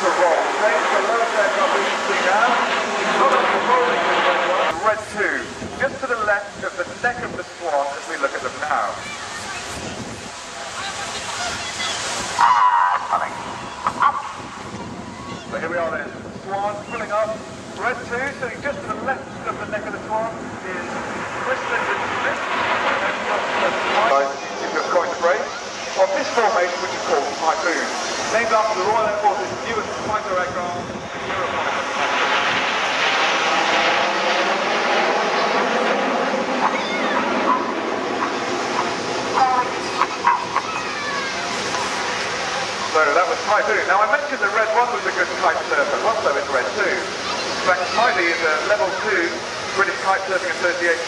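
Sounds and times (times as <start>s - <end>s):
people talking: 0.0s - 10.1s, 10.7s - 12.2s, 12.9s - 14.2s, 15.2s - 32.6s, 39.3s - 51.0s
jets roaring overhead: 0.0s - 51.0s.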